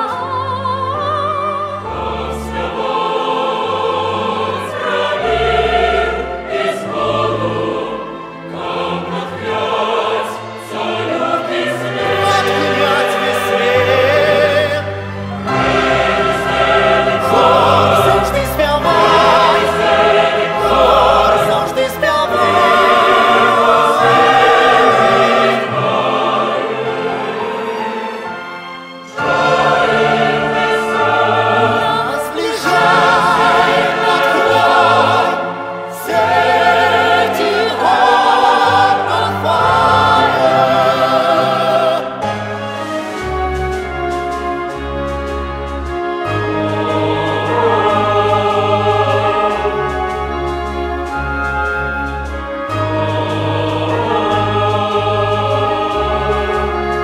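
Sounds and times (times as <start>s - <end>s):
mixed choir singing: 0.0s - 43.5s, 44.8s - 57.0s
symphony orchestra: 0.0s - 57.0s.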